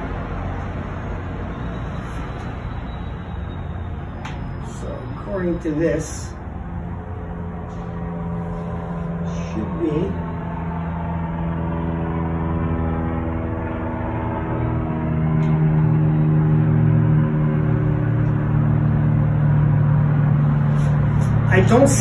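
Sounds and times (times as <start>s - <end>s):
engine humming: 0.0s - 22.0s.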